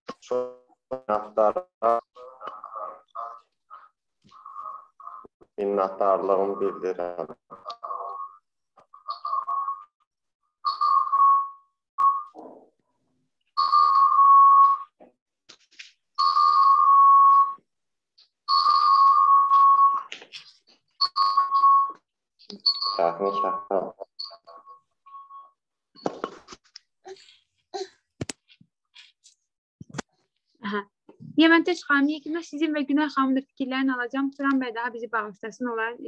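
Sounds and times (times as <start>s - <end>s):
electronic ringtone beeps: 9.0s - 9.9s, 10.7s - 12.4s, 13.6s - 14.9s, 16.2s - 17.6s, 18.5s - 20.1s, 21.0s - 25.6s.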